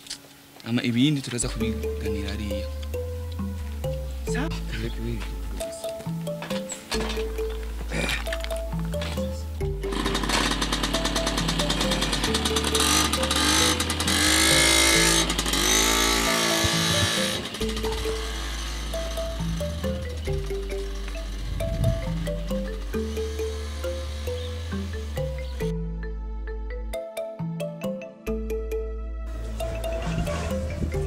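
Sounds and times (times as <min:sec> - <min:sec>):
background music with bass line: 0:00.8 - 0:31.0
small motorcycle engine revving: 0:09.8 - 0:25.7.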